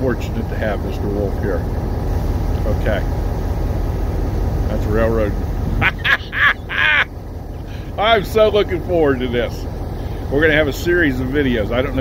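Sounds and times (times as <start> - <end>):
low steady rumble: 0.0 - 12.0
man laughing: 5.7 - 8.0.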